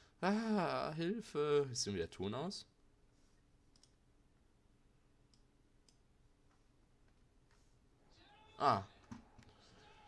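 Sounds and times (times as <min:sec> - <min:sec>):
computer mouse clicks: 0:03.7 - 0:04.0, 0:05.3 - 0:06.6.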